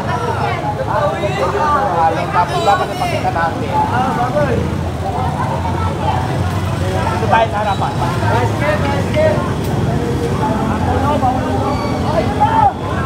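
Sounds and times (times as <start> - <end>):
people talking: 0.0 - 13.0
street traffic rumble: 0.0 - 13.0.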